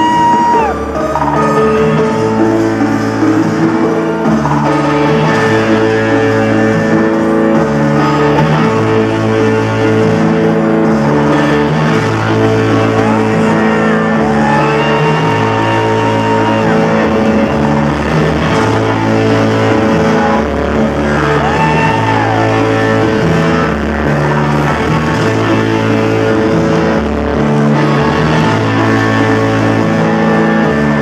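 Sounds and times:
electric guitar: 0.0 - 31.0
repeating bass line: 0.0 - 31.0.

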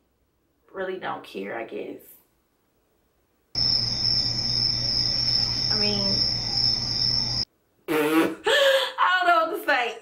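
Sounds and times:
crickets chirping sound effect: 3.6 - 7.5.

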